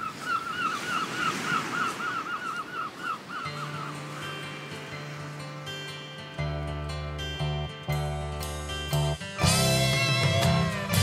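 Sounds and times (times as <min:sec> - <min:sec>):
gull calling: 0:00.0 - 0:04.5
surf and wind hiss: 0:00.0 - 0:06.4
guitar music: 0:03.5 - 0:11.0.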